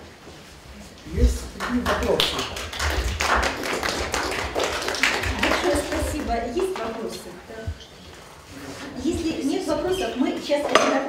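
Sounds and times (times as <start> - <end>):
audience applauding: 1.4 - 6.9.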